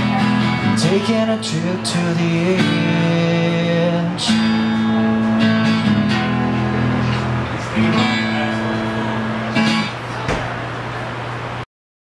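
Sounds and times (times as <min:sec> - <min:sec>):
acoustic guitar strumming: 0:00.0 - 0:10.3.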